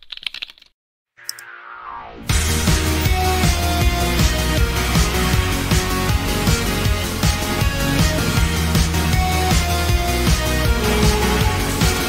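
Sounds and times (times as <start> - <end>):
keyboard typing: 0.0 - 0.7
music building to a beat: 1.4 - 12.0.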